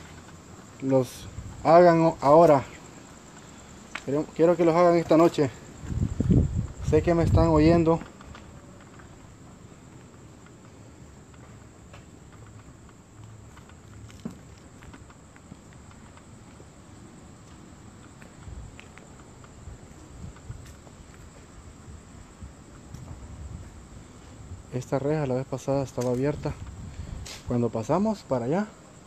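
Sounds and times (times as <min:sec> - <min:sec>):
faint footsteps: 0:00.0 - 0:28.0
crickets chirping: 0:00.0 - 0:29.0.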